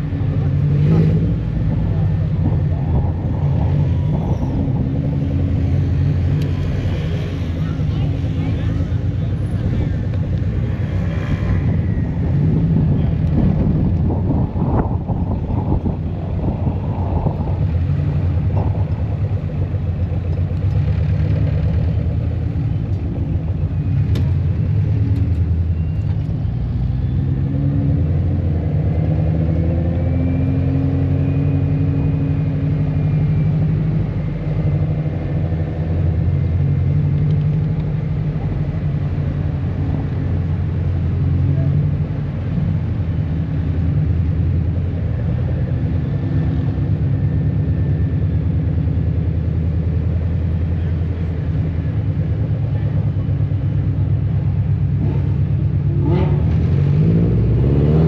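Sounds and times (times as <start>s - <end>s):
road noise: 0.0s - 58.0s.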